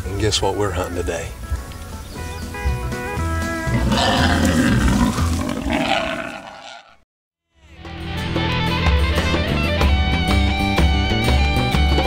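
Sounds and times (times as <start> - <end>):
background music: 0.0 - 5.6, 7.6 - 12.0
loud animal roar: 3.7 - 7.0.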